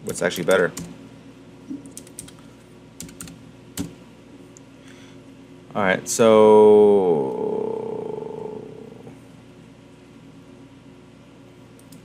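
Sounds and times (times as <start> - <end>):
man saying so hesitantly: 5.7 - 9.2.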